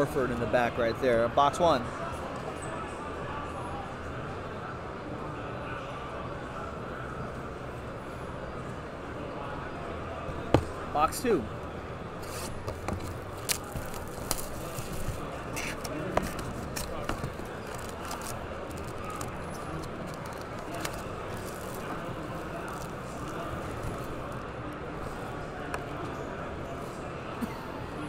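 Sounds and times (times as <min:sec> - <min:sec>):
crowd chatter: 0:00.0 - 0:28.0
foil packs crinkling: 0:12.2 - 0:24.3
cardboard box clicks: 0:12.5 - 0:21.1.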